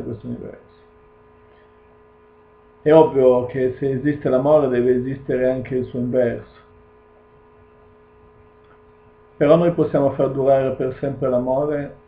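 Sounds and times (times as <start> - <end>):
faint electrical hum: 0.0 - 12.0
man's voice: 2.9 - 6.6, 9.4 - 12.0.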